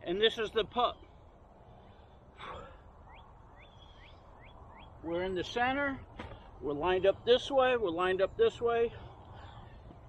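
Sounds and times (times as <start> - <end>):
man exhaling: 2.4 - 2.9
bird chirps sweeping upward: 3.0 - 5.1.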